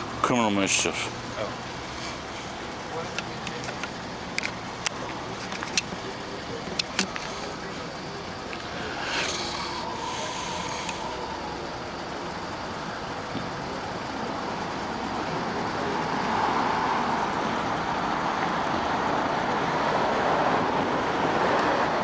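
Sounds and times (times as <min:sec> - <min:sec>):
road traffic rush: 0:00.0 - 0:22.0.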